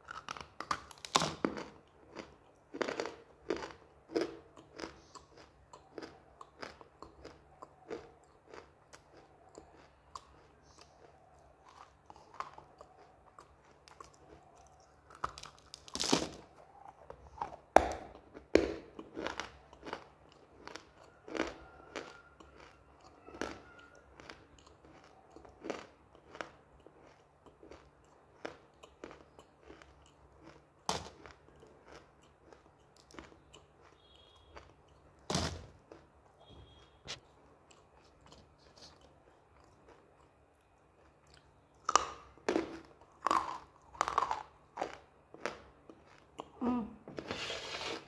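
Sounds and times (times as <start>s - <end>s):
crunchy biting and chewing: 0.0s - 46.6s.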